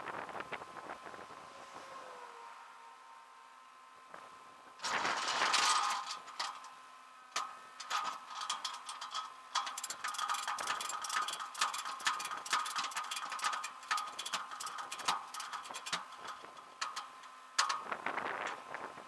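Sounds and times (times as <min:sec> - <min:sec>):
faint steady hum: 0:00.0 - 0:19.0
ratchet strap clicking: 0:08.4 - 0:17.0.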